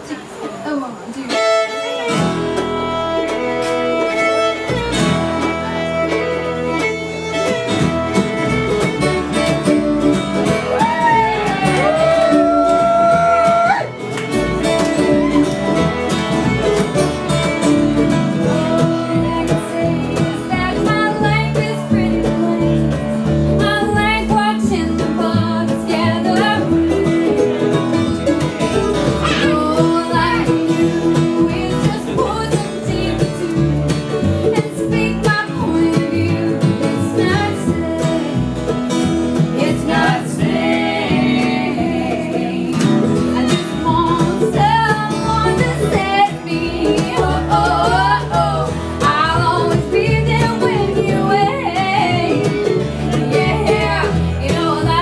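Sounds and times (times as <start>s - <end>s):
acoustic guitar: 0.0s - 55.0s
plucked string instruments: 0.0s - 55.0s
upright bass: 1.8s - 55.0s
person singing: 29.2s - 33.7s.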